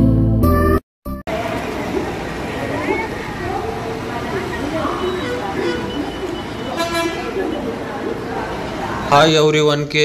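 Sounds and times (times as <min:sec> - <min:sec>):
people talking: 0:01.3 - 0:10.0
vehicle horn toot: 0:04.9 - 0:07.4.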